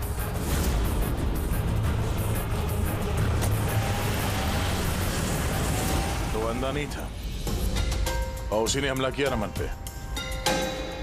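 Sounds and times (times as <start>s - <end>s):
car engine rumbling: 0.3s - 7.6s.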